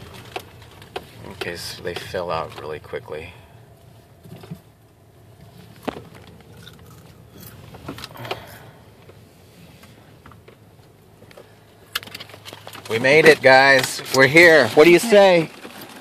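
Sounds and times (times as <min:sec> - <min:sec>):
car engine hum: 0:00.0 - 0:16.0.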